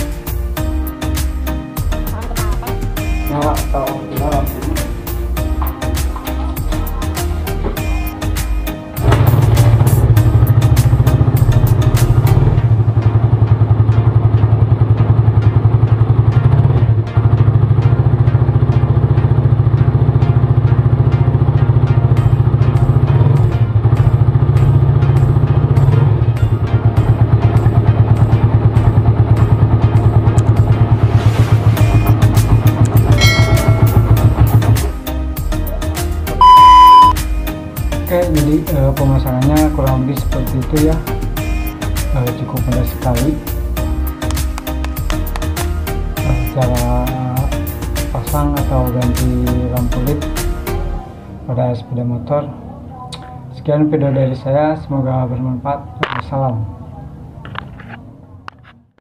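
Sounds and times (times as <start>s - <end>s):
motorcycle engine running: 4.2s - 37.1s
short high beep: 36.4s - 37.2s.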